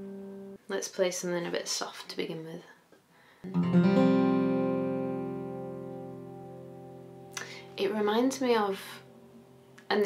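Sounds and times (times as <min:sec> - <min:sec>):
acoustic guitar chord ringing: 0:03.5 - 0:10.0.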